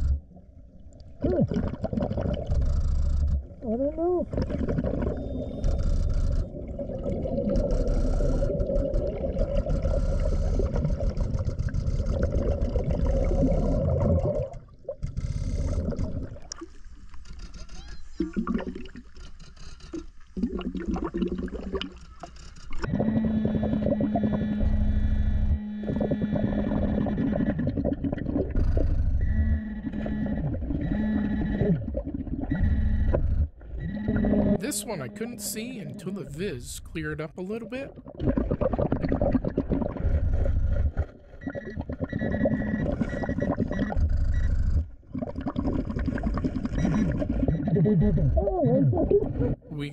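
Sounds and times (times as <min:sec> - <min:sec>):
exhaled bubbles: 0:00.0 - 0:16.8, 0:18.2 - 0:19.1, 0:19.9 - 0:22.0, 0:25.8 - 0:35.2, 0:37.9 - 0:49.7
regulator breathing underwater: 0:09.8 - 0:12.4.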